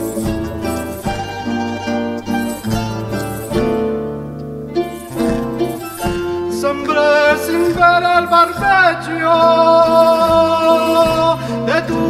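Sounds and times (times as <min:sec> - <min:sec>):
folk string ensemble playing: 0:00.0 - 0:12.0
person singing: 0:05.9 - 0:12.0.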